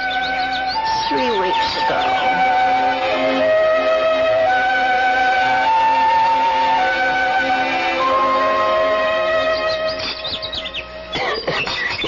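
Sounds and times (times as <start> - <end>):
held musical chord: 0.0 - 11.2
birds chirping and warbling: 0.0 - 12.0.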